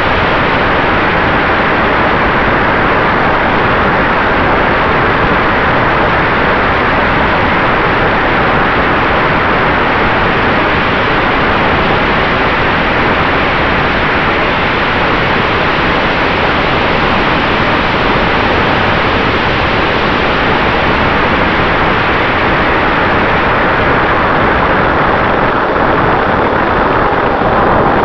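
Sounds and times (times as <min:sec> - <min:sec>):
electric ducted fan running: 0:00.0 - 0:28.0.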